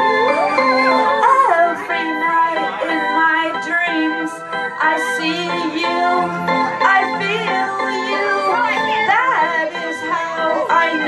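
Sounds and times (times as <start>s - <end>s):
live band music: 0.0s - 11.0s
person singing lead vocal: 0.0s - 11.0s.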